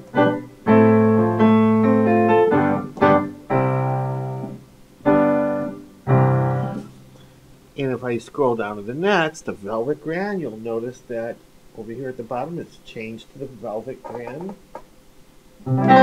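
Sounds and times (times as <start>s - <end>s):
piano chords with reverb: 0.0s - 6.9s, 15.6s - 16.0s.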